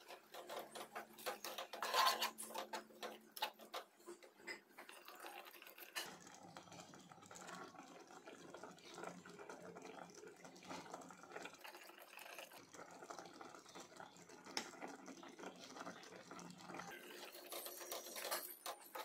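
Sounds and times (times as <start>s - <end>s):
gravy bubbling in a pot: 0.0s - 19.0s.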